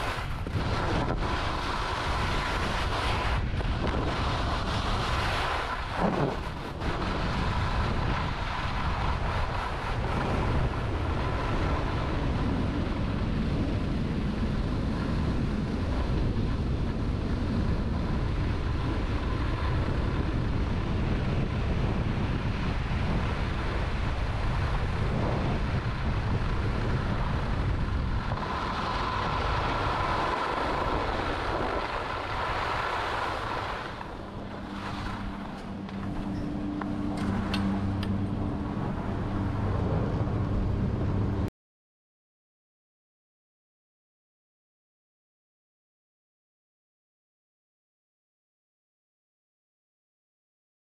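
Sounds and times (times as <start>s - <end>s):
skis carving on snow: 0.0s - 37.9s
chairlift machinery hum: 0.0s - 41.5s
wind rushing over microphone: 0.0s - 41.5s.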